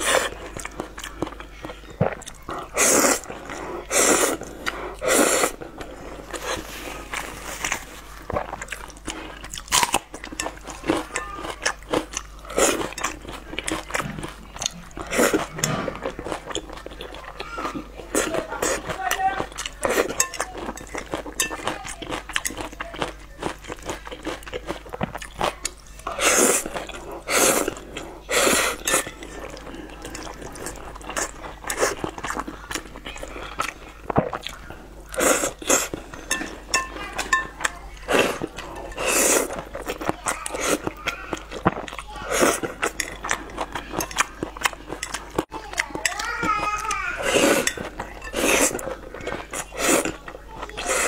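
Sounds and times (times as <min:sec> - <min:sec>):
wet chewing: 0:00.0 - 0:51.0
person slurping noodles: 0:02.0 - 0:09.4, 0:26.1 - 0:32.5, 0:35.1 - 0:36.1, 0:38.1 - 0:44.1, 0:47.2 - 0:50.2, 0:50.8 - 0:51.0.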